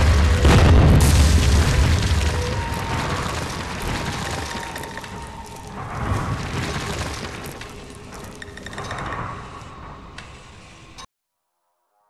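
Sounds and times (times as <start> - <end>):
deep boom with rumble: 0.0 - 4.8
crashing hit: 0.0 - 8.0
crumbling debris rush: 0.0 - 8.6.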